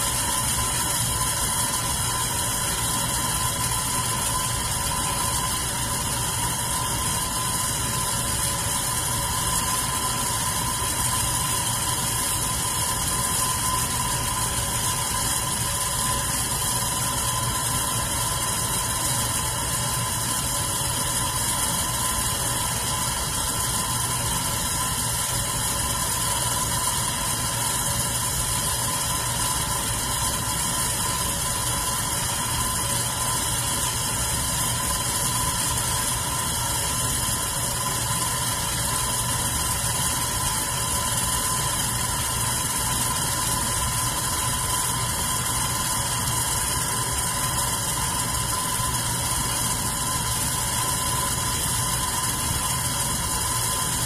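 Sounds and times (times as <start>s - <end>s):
electric fan running: 0.0s - 54.0s.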